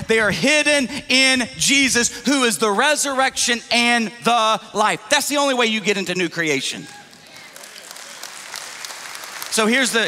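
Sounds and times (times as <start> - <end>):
congregation applauding: 6.8 - 10.0.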